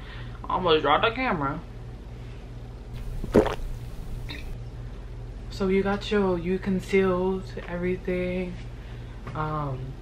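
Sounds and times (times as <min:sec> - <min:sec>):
mouth sound: 0:03.0 - 0:04.6
person gulping: 0:03.0 - 0:04.6.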